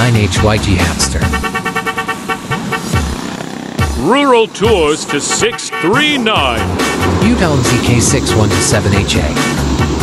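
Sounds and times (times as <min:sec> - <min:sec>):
vehicle horn rapid pulses: 0:01.2 - 0:03.4, 0:04.7 - 0:07.0.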